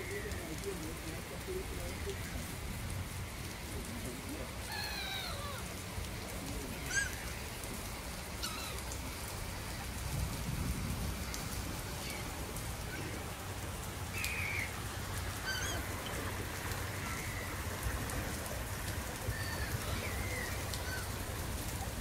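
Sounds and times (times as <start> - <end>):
rippling water: 0.0 - 22.0
gulls crying: 3.8 - 10.2, 11.2 - 22.0
wind hiss: 5.4 - 22.0.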